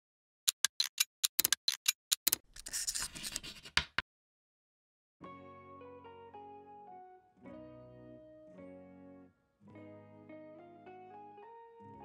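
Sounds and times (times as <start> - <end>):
scratchy rustling: 2.6 - 3.8.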